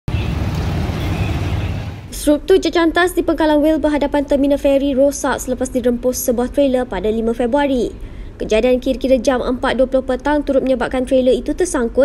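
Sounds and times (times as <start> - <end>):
road traffic rumble: 0.1 - 12.0.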